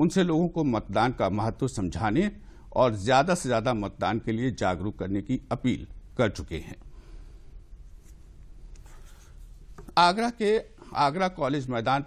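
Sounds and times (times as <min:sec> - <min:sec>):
low steady hum: 0:00.0 - 0:12.0
person speaking: 0:08.8 - 0:12.0.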